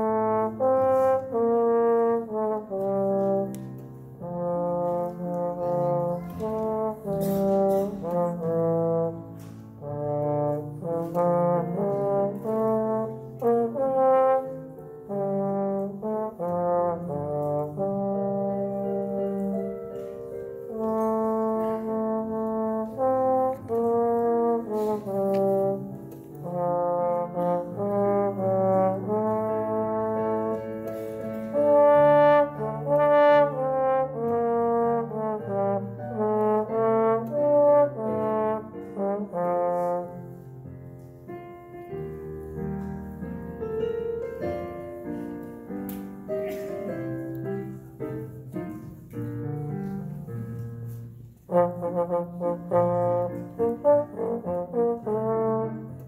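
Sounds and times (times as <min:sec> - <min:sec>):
trombone solo melody: 0:00.0 - 0:03.5, 0:04.2 - 0:19.5, 0:20.7 - 0:30.6, 0:31.4 - 0:40.3, 0:51.4 - 0:56.0.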